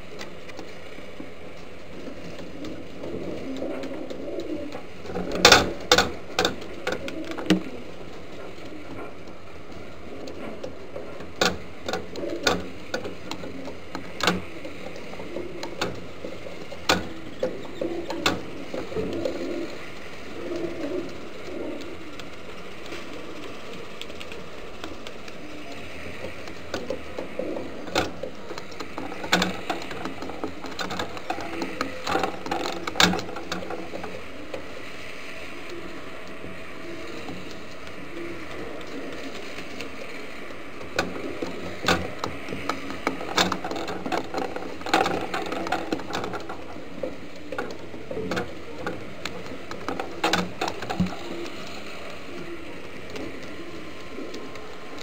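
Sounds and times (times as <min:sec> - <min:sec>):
pigeons cooing: 0:00.0 - 0:55.0
sharp clicks and knocks: 0:00.1 - 0:34.9, 0:35.6 - 0:55.0.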